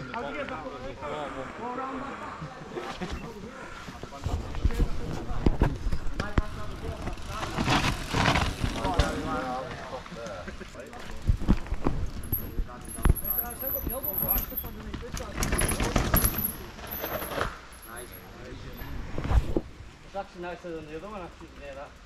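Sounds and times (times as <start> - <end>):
bikes rattling over dirt: 3.0 - 22.0.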